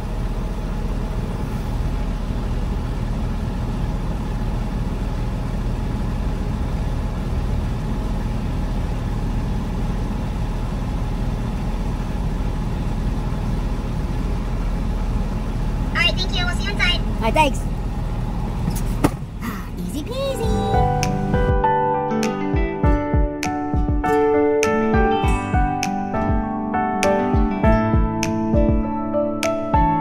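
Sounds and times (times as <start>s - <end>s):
truck diesel engine idling: 0.0s - 21.5s.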